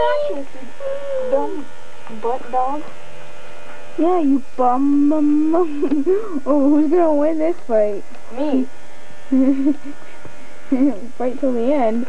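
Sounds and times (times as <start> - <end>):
person humming: 0.0 - 1.7.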